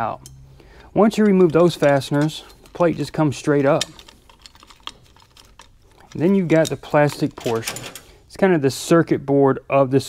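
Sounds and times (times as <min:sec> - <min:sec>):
light metal clicks and taps: 0:00.1 - 0:08.1.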